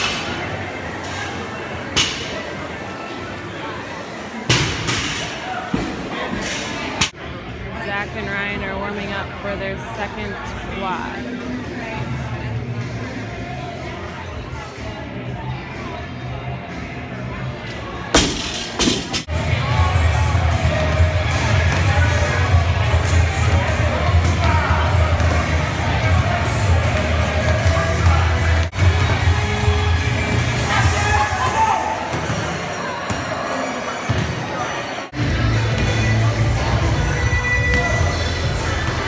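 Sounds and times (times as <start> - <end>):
spectators' voices and shouts: 0.0 - 39.0
background music: 7.5 - 32.0, 35.1 - 39.0.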